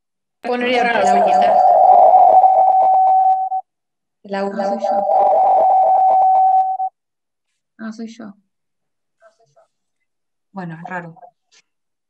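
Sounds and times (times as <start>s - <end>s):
electronic feedback whistle: 0.8s - 3.7s, 4.4s - 6.9s.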